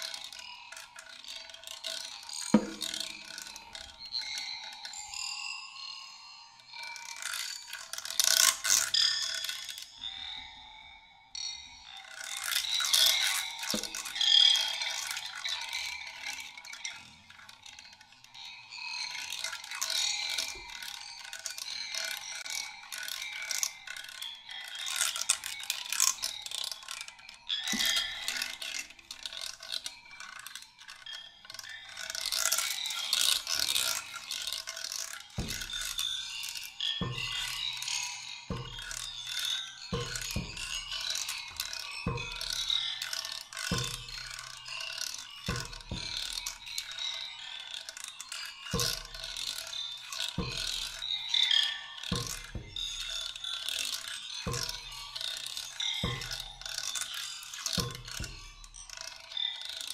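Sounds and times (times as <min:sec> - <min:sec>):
dry reeds rattling and scraping: 0:12.1 - 0:59.9.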